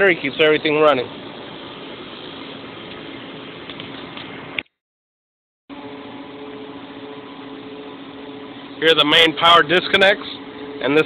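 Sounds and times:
machine hum of equipment cabinets: 5.7s - 11.0s.

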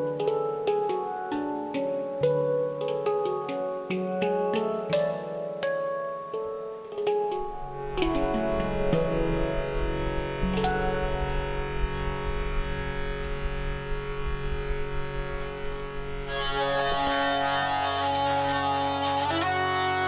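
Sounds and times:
hurdy-gurdy melody over drone: 0.0s - 5.6s, 6.2s - 20.0s
handpan notes: 0.0s - 20.0s.

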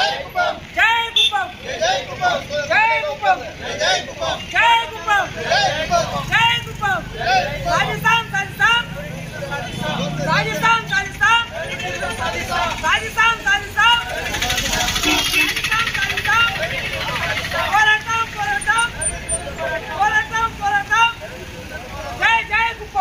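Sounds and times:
crowd shouting slogans: 0.0s - 23.0s.

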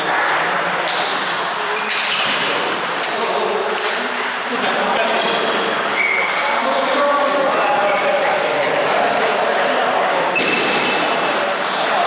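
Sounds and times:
table tennis balls bouncing: 0.0s - 12.0s.

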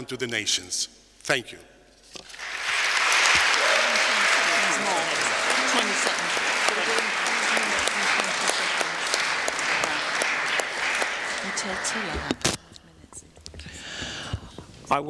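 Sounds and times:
large audience applauding: 2.3s - 12.6s.

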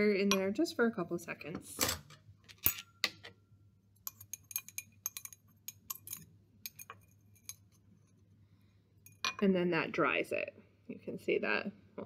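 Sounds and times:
glass clinking: 4.1s - 7.7s.

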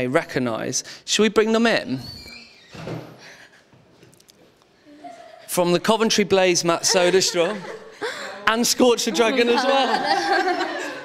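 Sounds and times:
door opening with squeak: 1.9s - 3.2s.

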